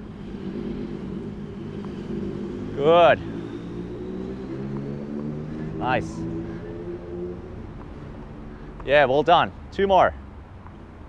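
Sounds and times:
low rumble of street traffic: 0.0 - 11.0
vehicle engine running: 0.0 - 11.0.

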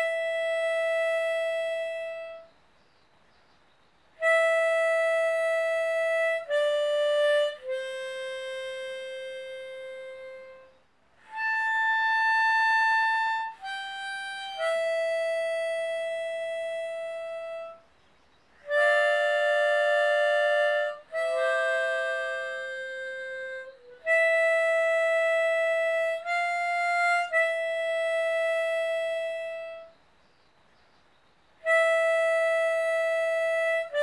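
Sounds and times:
harmonica long steady note: 0.0 - 2.5, 4.1 - 17.9, 18.5 - 30.0, 31.6 - 34.0.

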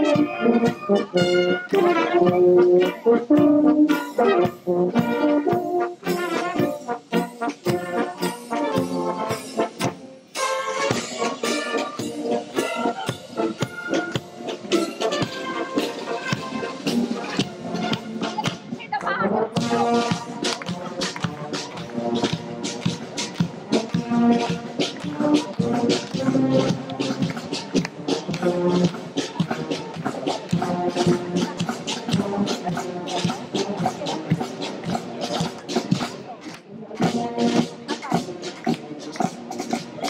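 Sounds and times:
drum and cymbal beats: 0.0 - 19.0, 19.6 - 40.0
brass band playing a march: 0.0 - 40.0.

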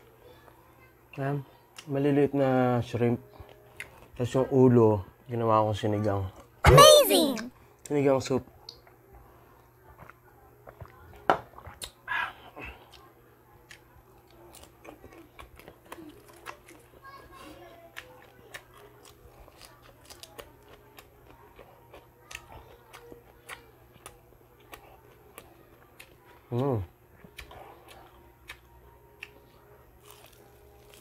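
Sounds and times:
wet chewing and crunching: 3.3 - 4.4, 9.9 - 31.0.

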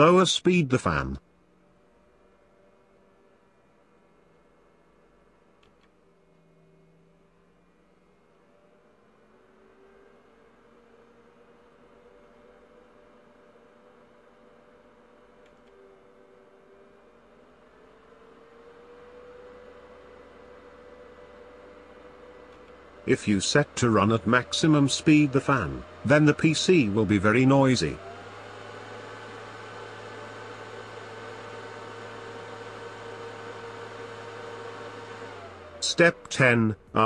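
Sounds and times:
computer cooling fan whirring: 0.0 - 37.0.

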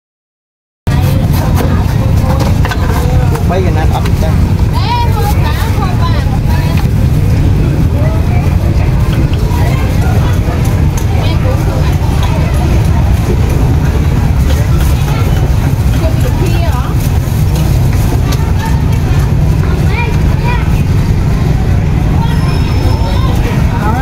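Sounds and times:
people's voices: 0.9 - 24.0
traffic rumble: 0.9 - 24.0.

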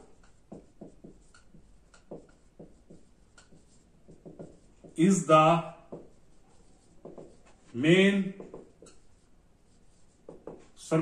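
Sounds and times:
pen scratching while writing: 0.0 - 5.0, 5.9 - 7.7, 8.4 - 10.8
man speaking: 5.0 - 5.9, 7.7 - 8.4, 10.8 - 11.0.

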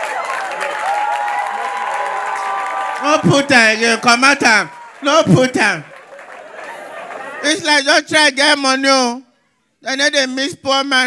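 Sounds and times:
audience cheering and clapping: 0.0 - 7.7
laughter: 6.4 - 7.6.

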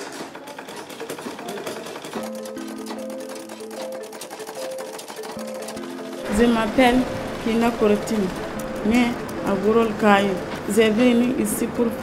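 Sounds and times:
treadle sewing machine clattering: 0.0 - 11.9.

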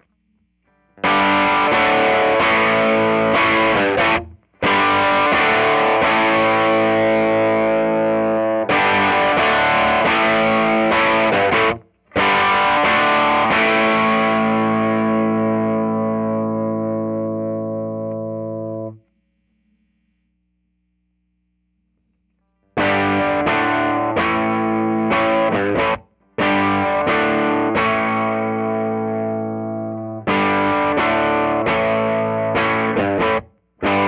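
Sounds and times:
overdriven electric guitar chords: 0.7 - 19.0, 22.6 - 34.0.

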